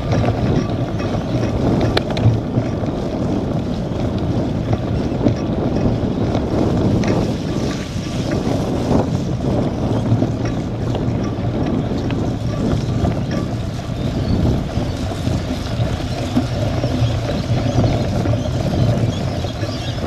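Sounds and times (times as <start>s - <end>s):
bike rattling: 0.0s - 20.0s
bike tyre noise on mud: 0.0s - 20.0s
wind on microphone: 0.0s - 20.0s.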